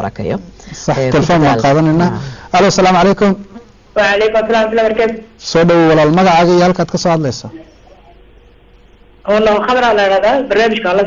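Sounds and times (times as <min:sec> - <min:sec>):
person speaking: 0:00.0 - 0:08.2.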